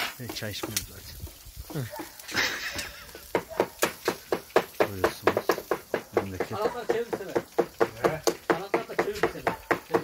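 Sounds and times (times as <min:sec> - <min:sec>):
knives chopping on a griddle: 0:00.0 - 0:10.0.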